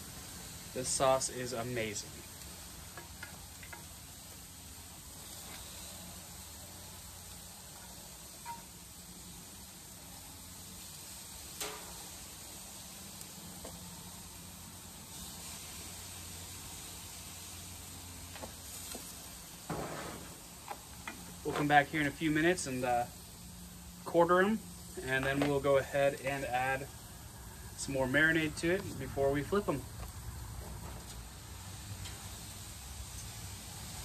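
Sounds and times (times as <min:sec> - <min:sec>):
meat sizzling on a grill: 0:00.0 - 0:34.0.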